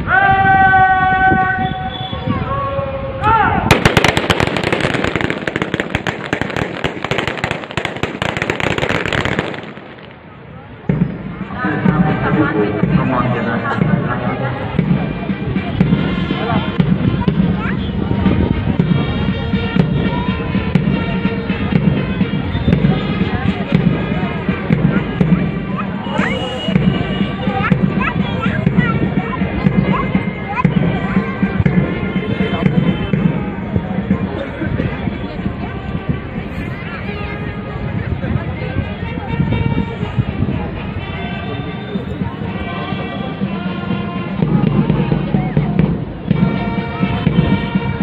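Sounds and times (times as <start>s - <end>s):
shouted parade command: 0.0s - 9.6s, 18.9s - 35.4s, 41.0s - 48.0s
band music with brass notes: 0.0s - 48.0s
dense crackle of sharp pops: 3.7s - 10.2s.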